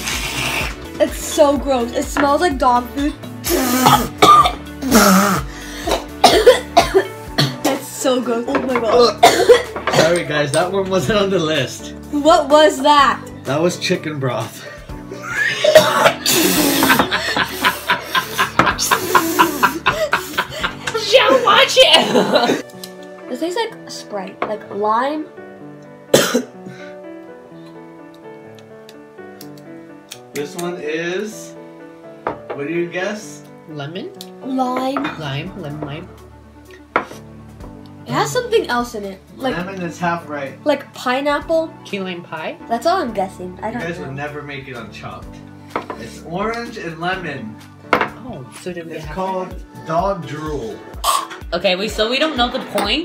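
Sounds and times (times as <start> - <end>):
background music: 0.0 - 53.0
man coughing and gagging: 3.4 - 7.8, 9.0 - 10.2, 15.2 - 22.6, 26.1 - 26.7, 50.9 - 51.4.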